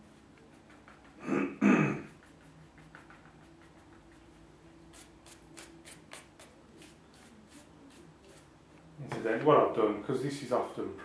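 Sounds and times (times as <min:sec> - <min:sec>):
faint low hum: 0:00.0 - 0:11.0
brush strokes on paper: 0:02.0 - 0:08.6.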